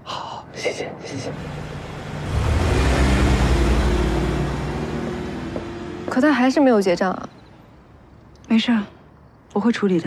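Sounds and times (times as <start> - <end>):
car engine and tyre rumble: 1.2 - 8.3.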